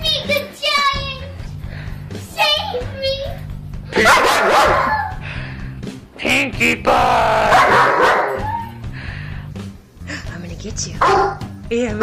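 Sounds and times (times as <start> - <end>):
dog barking and yipping: 4.0 - 5.2, 7.4 - 8.8, 11.0 - 11.5
dog whining: 4.0 - 5.2, 7.5 - 8.8.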